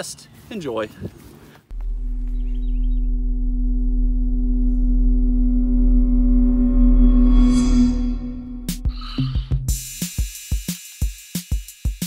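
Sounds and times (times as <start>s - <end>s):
electronic drone: 1.7s - 9.5s.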